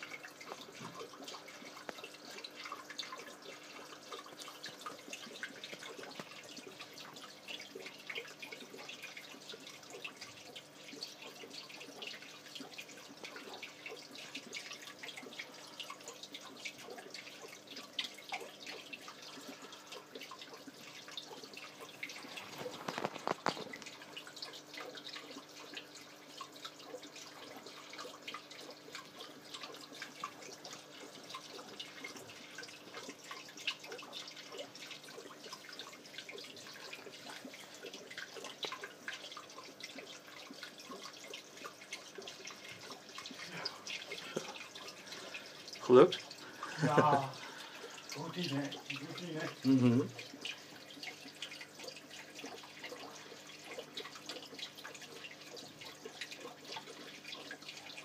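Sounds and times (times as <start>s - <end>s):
aquarium water splashing: 0.0s - 58.0s
faint steady hum: 0.0s - 58.0s.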